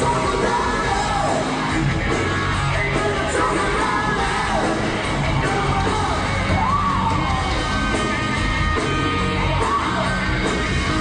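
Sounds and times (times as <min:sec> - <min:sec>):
man singing and shouting: 0:00.0 - 0:07.1
hard rock band playing: 0:00.0 - 0:11.0.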